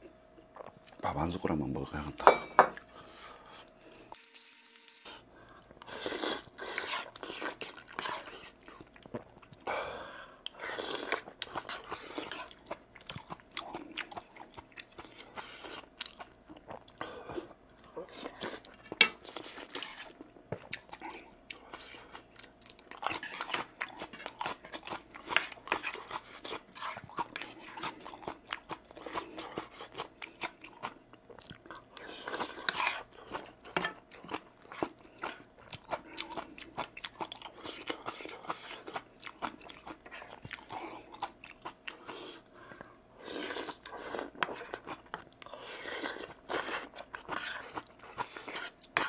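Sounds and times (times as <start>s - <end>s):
man chewing and slurping noodles: 4.9s - 49.0s.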